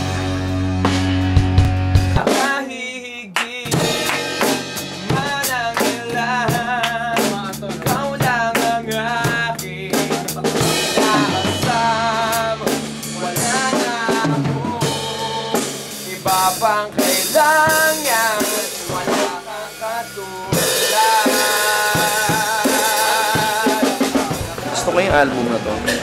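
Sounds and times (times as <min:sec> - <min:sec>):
bass line: 0:00.0 - 0:02.3, 0:03.7 - 0:26.0
drum kit: 0:00.0 - 0:26.0
man singing: 0:02.1 - 0:26.0.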